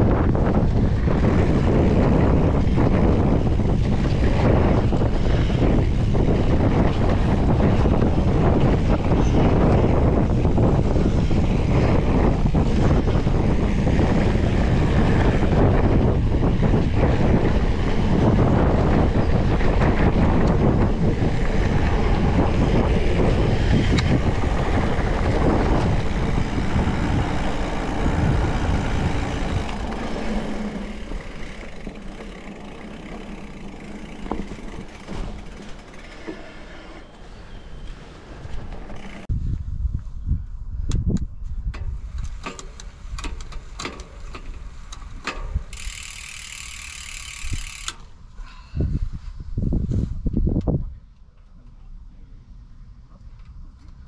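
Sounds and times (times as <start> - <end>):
tyres rumbling over dirt trail: 0.0 - 39.4, 42.0 - 48.1
wind buffeting microphone: 0.0 - 51.2
sharp clicks and knocks: 40.9 - 46.1.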